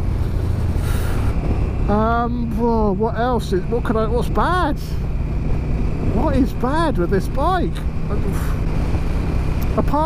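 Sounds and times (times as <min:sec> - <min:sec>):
motorcycle engine rumble: 0:00.0 - 0:10.0.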